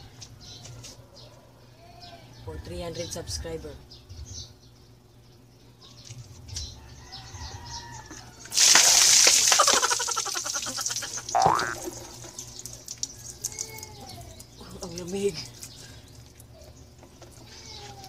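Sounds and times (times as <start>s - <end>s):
ice water splashing: 8.5s - 13.1s.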